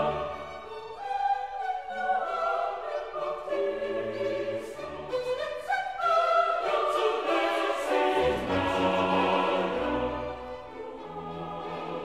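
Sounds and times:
choir singing polyphony: 0:00.0 - 0:12.0
string accompaniment: 0:00.0 - 0:12.0.

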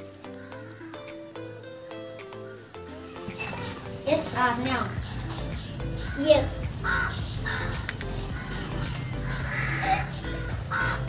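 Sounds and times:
background music: 0:00.0 - 0:11.0
crow cawing: 0:00.2 - 0:01.2, 0:02.4 - 0:11.0.

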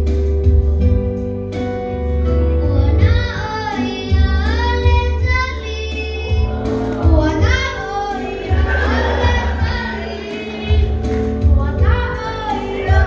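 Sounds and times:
children singing: 0:06.0 - 0:13.0
music with pulsing bass: 0:06.3 - 0:13.0.

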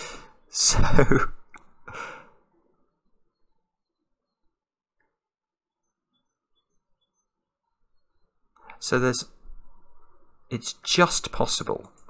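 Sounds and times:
short breath: 0:00.0 - 0:00.4, 0:01.9 - 0:02.4.

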